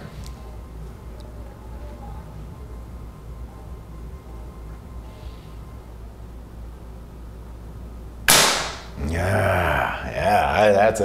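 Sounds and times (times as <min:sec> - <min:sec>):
air rifle shot crack: 0:08.3 - 0:09.0
man speaking: 0:09.0 - 0:11.0.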